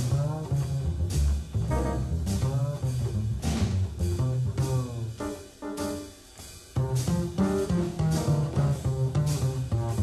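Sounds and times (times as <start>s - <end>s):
double bass line: 0.0s - 10.0s
drum kit cymbal strokes: 0.0s - 10.0s.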